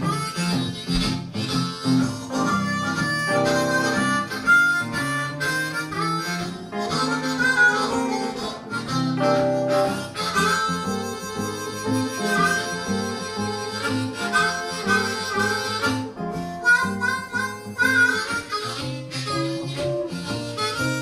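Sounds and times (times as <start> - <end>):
blues harmonica solo: 0.0 - 21.0
rhythmic guitar accompaniment: 0.0 - 21.0.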